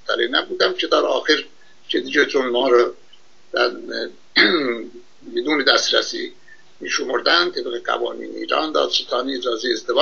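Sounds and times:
man speaking over webcam: 0.0 - 10.0.

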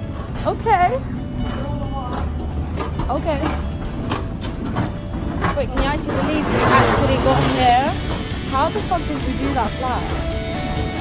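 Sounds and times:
music: 0.0 - 11.0
vehicle engine rumble: 0.0 - 11.0.

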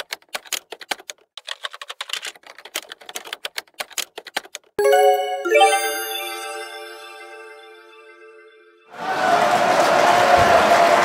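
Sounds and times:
typewriter keystroke clicks: 0.0 - 4.8.

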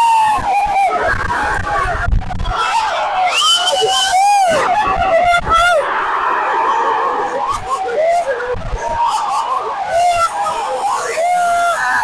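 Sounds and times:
fans yelling close by: 0.0 - 12.0
stadium crowd shouting and screaming: 0.0 - 12.0.

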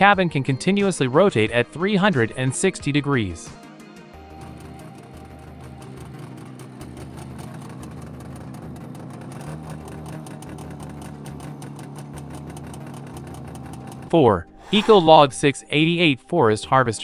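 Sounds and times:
diesel engine running: 4.2 - 15.3.

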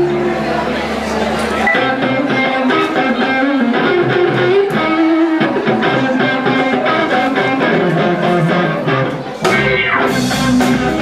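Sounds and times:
electric guitar: 0.0 - 11.0
live band playing: 0.0 - 11.0.

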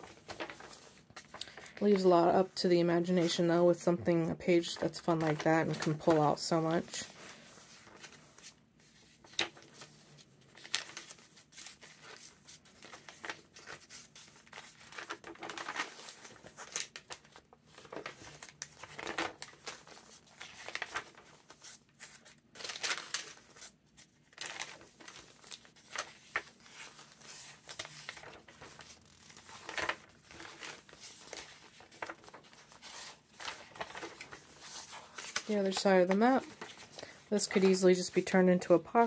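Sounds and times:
paper pages rustling: 0.0 - 2.3, 4.5 - 39.0.

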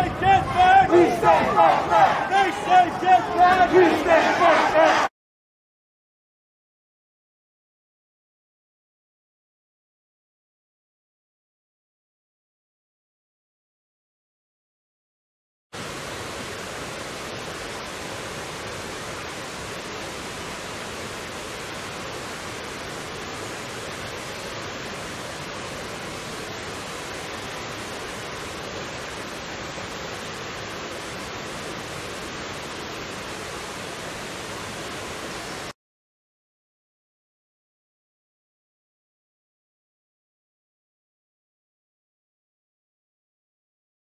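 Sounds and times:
water cascading over rocks: 0.0 - 5.0, 15.8 - 35.8.

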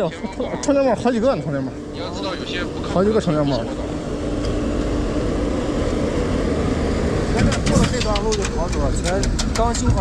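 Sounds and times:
dump truck diesel engine rumble: 0.0 - 10.0.

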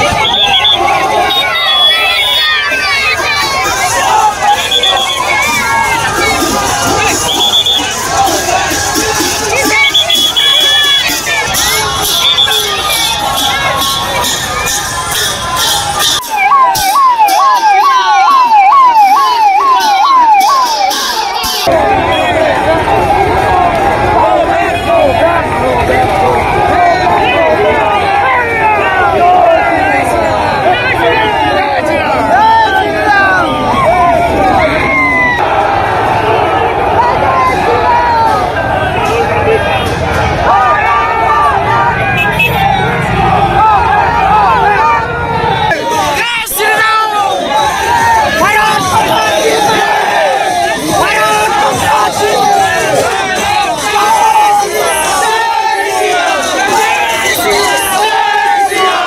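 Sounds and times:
crowd of protesters shouting: 0.0 - 59.0
police siren yelping: 0.0 - 59.0.

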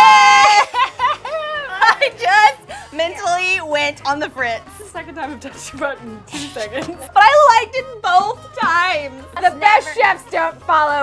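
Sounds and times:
woman squealing: 0.0 - 1.9
women laughing and exclaiming: 0.0 - 3.6, 6.3 - 11.0
background music with steady beat: 0.0 - 11.0.

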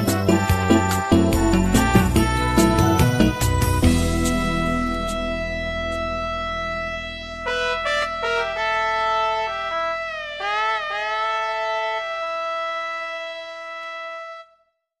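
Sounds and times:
instrumental backing track: 0.0 - 14.4.

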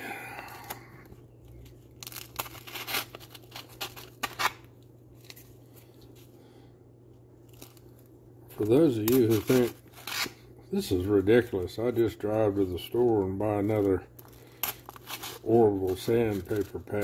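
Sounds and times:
stiff paper rustling: 7.5 - 17.0.

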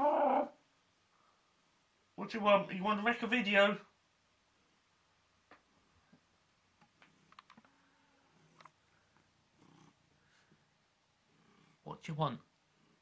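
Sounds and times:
cat purring softly: 8.3 - 10.6, 11.3 - 11.8.

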